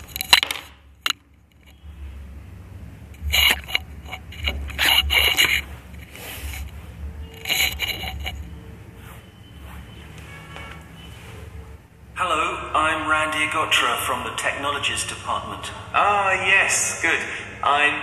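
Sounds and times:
scraping and rubbing: 0.0s - 2.3s, 3.1s - 11.8s
faint steady low hum: 0.0s - 18.0s.

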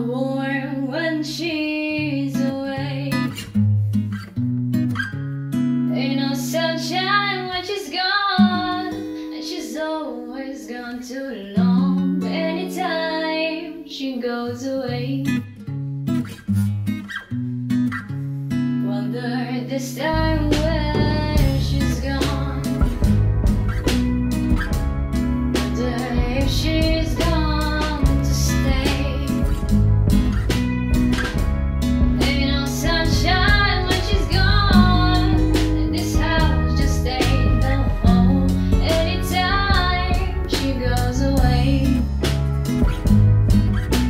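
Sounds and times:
person singing: 18.9s - 23.0s, 25.6s - 29.7s, 32.2s - 42.2s
bass guitar line: 20.1s - 44.0s
strummed acoustic guitar chords: 20.1s - 44.0s
drum hit: 21.0s - 27.3s, 28.8s - 35.8s
small band playing: 21.0s - 41.0s.

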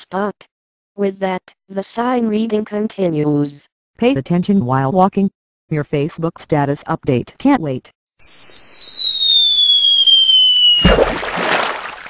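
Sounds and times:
whistle sliding down in pitch: 8.2s - 11.0s.

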